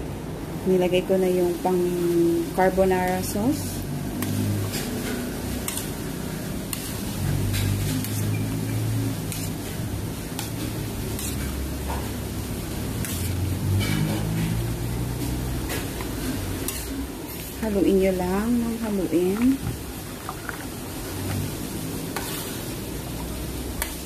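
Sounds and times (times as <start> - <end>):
spatula scraping pan in sauce: 4.2 - 17.7, 22.1 - 24.0.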